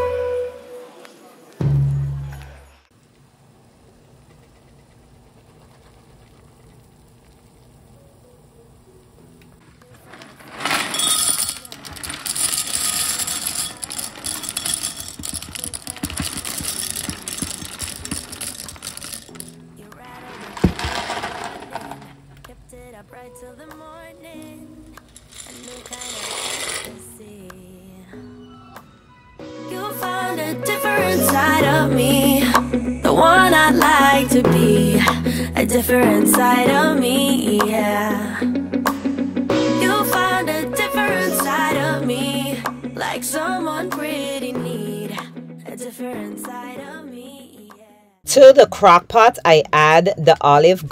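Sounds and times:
pot of water heating: 4.1 - 9.0
pasta rattling into glass: 10.0 - 22.4, 25.0 - 27.0.

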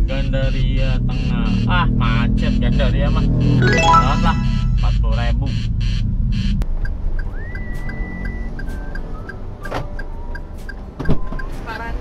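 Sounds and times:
faint thin tune: 3.6 - 4.8.

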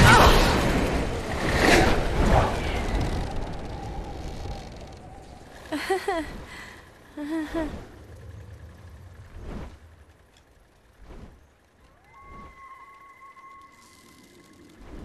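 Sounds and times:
gliders whooshing past: 9.1 - 15.0.

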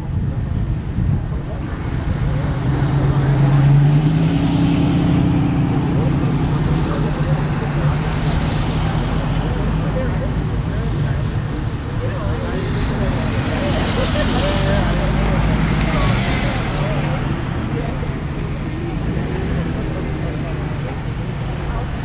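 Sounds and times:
wind noise: 0.0 - 6.6
steady traffic: 0.0 - 22.0
vehicle engine hum: 0.0 - 22.0.

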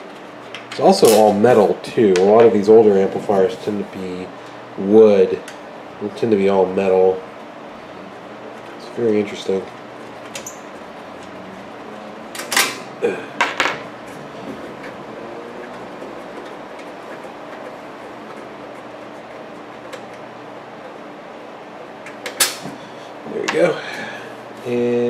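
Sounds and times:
faint room hum: 0.0 - 25.0.

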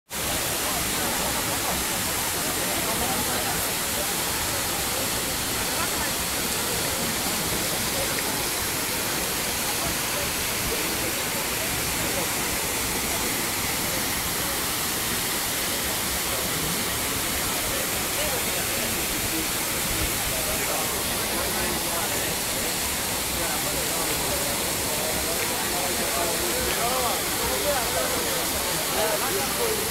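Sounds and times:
chatter of voices: 0.1 - 29.9
rushing falling water: 0.1 - 29.9.

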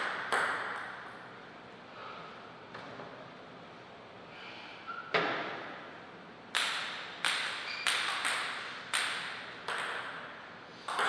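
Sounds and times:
table tennis ball bouncing: 0.0 - 1.2, 6.5 - 11.0.

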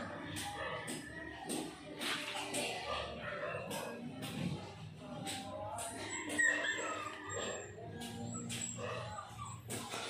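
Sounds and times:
animal calls: 6.0 - 10.0.

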